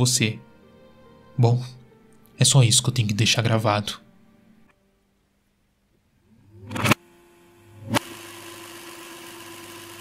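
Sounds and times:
steady hum with hiss: 0:03.4 - 0:08.0
mechanical whir: 0:06.3 - 0:10.0.

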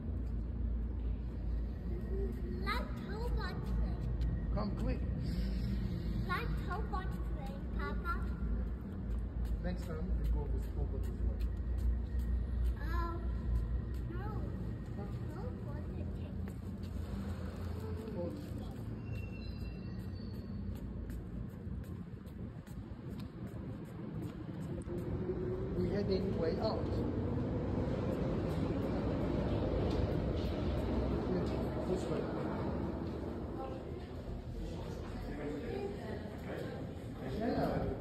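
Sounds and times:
steady low rumble: 0:00.0 - 0:38.0.

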